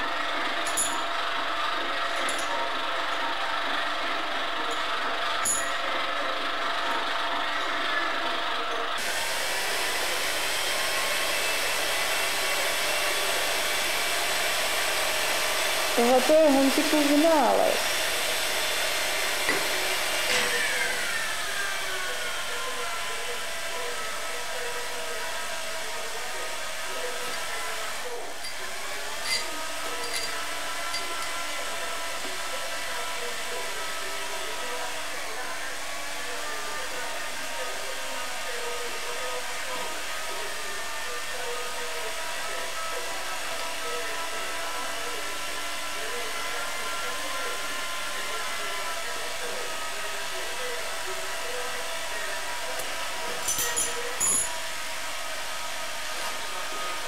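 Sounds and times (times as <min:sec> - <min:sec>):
milling machine whining: 0:00.0 - 0:57.0.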